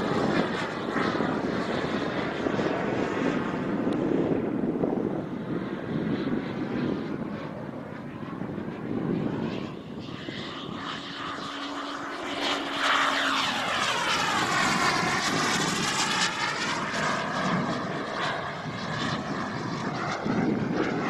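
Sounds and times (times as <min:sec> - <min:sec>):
model jet turbine passing overhead: 0:00.0 - 0:21.0.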